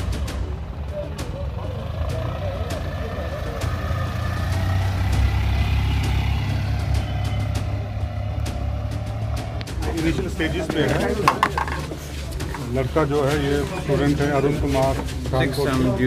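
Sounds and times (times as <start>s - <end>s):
van engine driving past: 0.0s - 10.9s
people talking: 9.8s - 16.0s.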